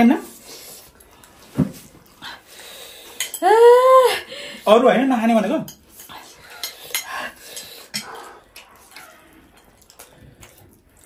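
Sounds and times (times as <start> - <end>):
woman's high wailing cry: 3.4 - 4.3.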